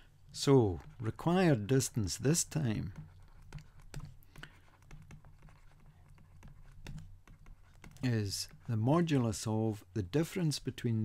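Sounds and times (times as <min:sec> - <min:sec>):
stylus clicking and scratching: 0:00.8 - 0:09.3.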